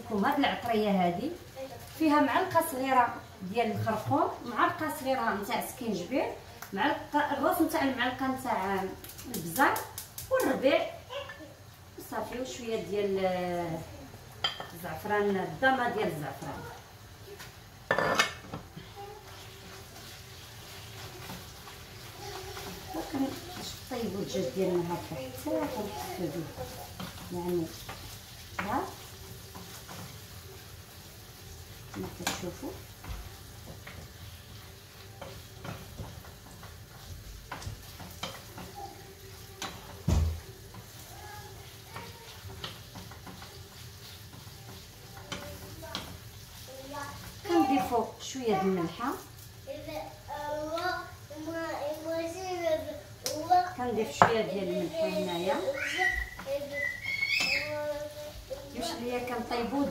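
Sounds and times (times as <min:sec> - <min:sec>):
wooden spoon stirring in frying pan: 0:00.0 - 0:59.9
glass plate clattering on countertop: 0:17.9 - 0:18.6.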